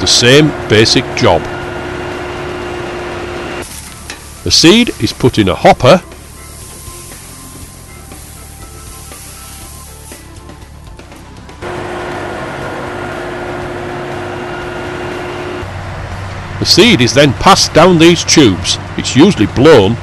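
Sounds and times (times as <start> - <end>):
tractor engine hum with whine: 0.0 - 20.0.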